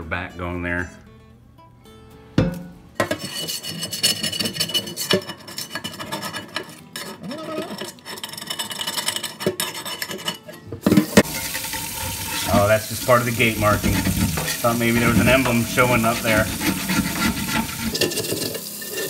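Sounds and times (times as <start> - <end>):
metal scraper scraping skillet: 3.0 - 19.0
water running onto pan: 10.9 - 19.0.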